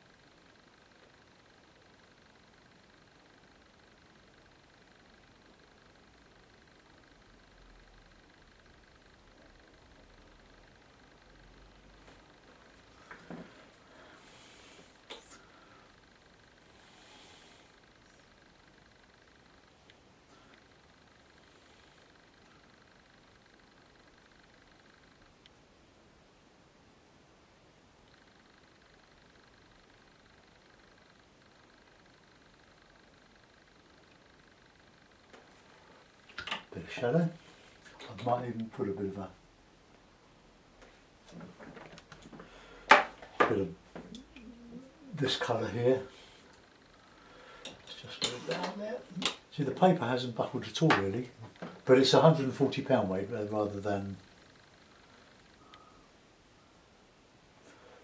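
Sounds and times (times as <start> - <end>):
faint high whine: 0.0 - 58.0.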